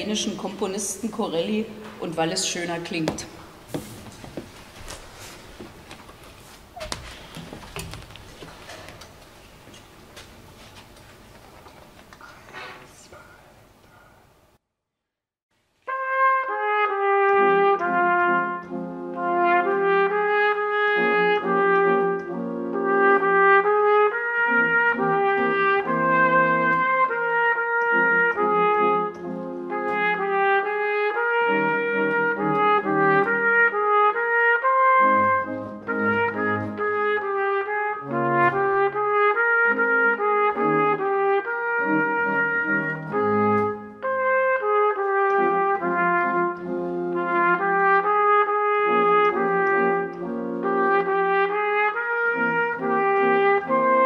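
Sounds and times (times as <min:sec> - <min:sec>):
trumpet melody: 0:15.8 - 0:54.0
pipe organ chords: 0:16.2 - 0:54.0.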